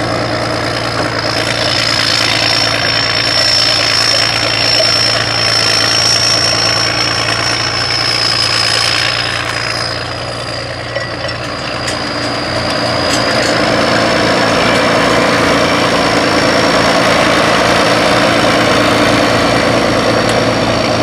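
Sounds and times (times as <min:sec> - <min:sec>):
diesel tractor engine running: 0:00.0 - 0:21.0
high whine: 0:00.0 - 0:21.0.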